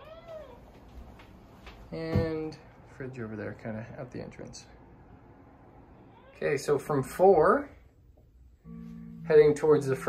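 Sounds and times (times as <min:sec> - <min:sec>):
cat meowing: 0:00.0 - 0:00.6, 0:06.1 - 0:06.4.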